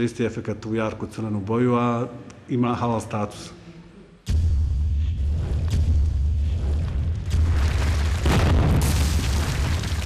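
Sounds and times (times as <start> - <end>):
deep boom: 7.1 - 9.8
rubble crashing: 7.3 - 10.0.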